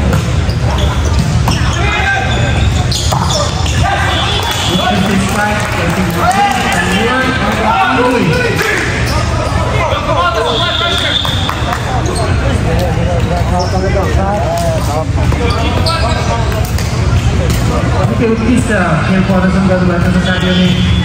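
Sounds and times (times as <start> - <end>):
crowd chatter: 0.0 - 21.0
loud voices: 0.0 - 21.0.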